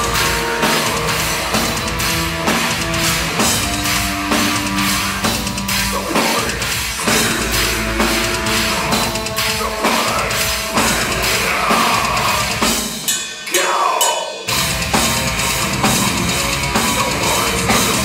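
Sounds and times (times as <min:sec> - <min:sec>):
live death metal band: 0:00.0 - 0:18.0.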